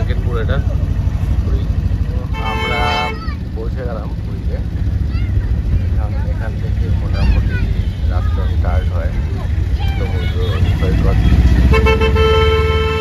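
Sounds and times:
car engine and road noise: 0:00.0 - 0:13.0
vehicle horn blast: 0:02.2 - 0:03.3, 0:11.6 - 0:13.0.

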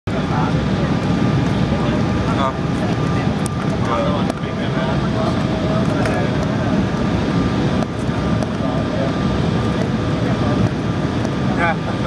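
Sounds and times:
faint voices: 0:00.1 - 0:12.0
jet engine roar in cabin: 0:00.1 - 0:12.0.

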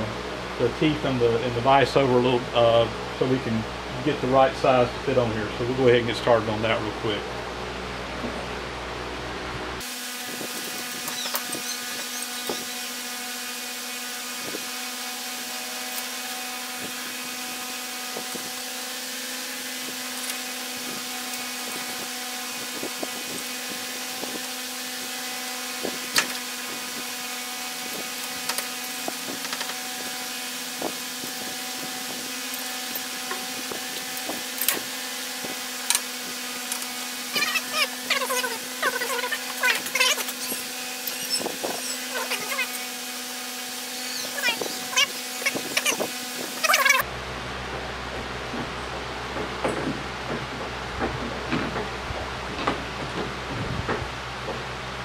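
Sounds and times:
steady machine hum: 0:00.0 - 0:55.0.

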